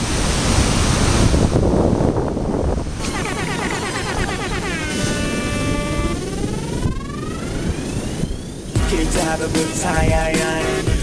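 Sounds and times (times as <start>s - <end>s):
rising synthesizer sweep: 3.2s - 9.4s.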